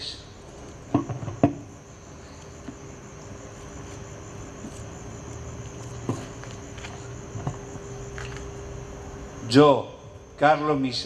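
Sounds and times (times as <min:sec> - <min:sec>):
crickets chirping: 0:00.0 - 0:11.0
faint low background hum: 0:00.0 - 0:11.0.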